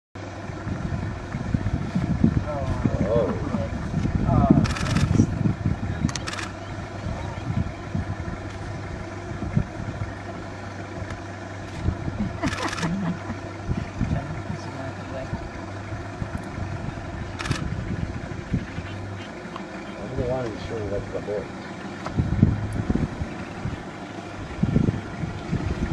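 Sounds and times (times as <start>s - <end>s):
steady low hum: 0.2s - 25.9s
faint voices: 2.4s - 8.2s.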